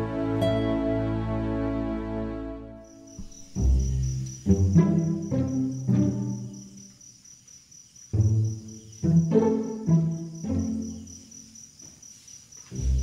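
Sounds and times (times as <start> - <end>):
slow music of sustained chords: 0.0 - 6.8
crickets chirping: 2.6 - 13.0.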